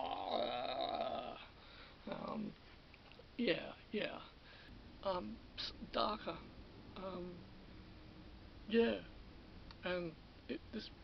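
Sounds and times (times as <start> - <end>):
man groaning: 0.0 - 1.5.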